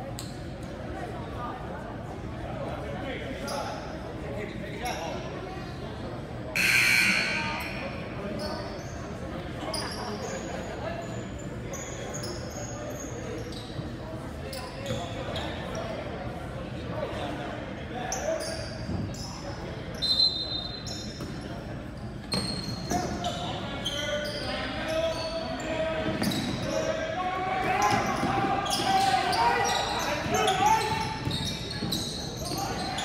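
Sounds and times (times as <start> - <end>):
players and spectators voices: 0.0 - 33.0
referee's whistle: 6.6 - 7.8, 20.0 - 21.0
sneaker squeaks: 6.6 - 15.9, 18.1 - 27.0, 27.6 - 33.0.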